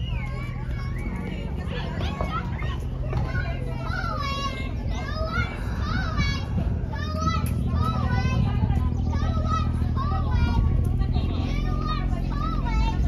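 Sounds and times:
children calling and shouting: 0:00.0 - 0:13.0
steady low hum: 0:00.0 - 0:13.0.

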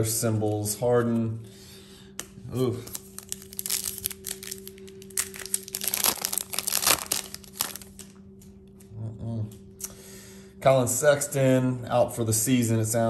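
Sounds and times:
foil wrapper tearing and crinkling: 0:02.8 - 0:08.1.

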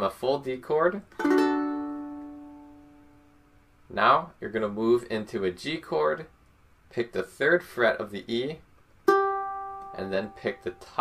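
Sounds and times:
ukulele chord strum: 0:01.1 - 0:03.3, 0:09.0 - 0:11.0.

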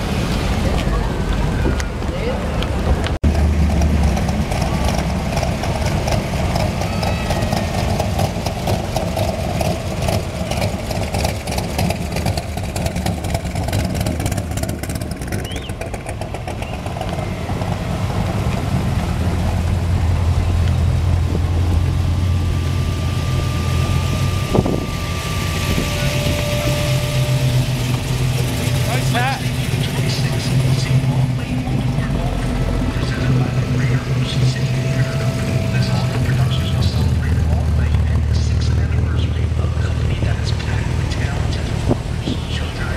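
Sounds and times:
car engines idling: 0:00.0 - 0:42.9
crowd voices: 0:00.0 - 0:42.9.

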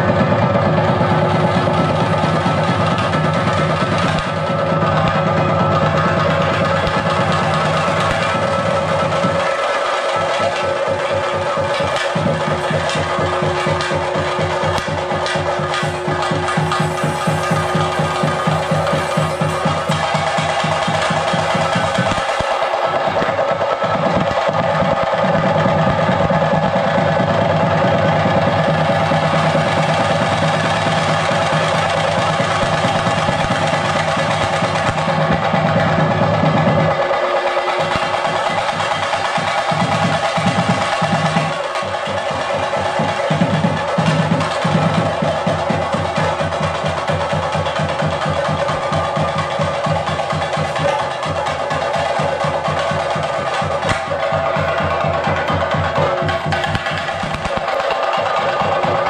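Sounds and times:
fast drum stick strokes: 0:00.0 - 0:59.0
steady held tones: 0:00.0 - 0:59.0.

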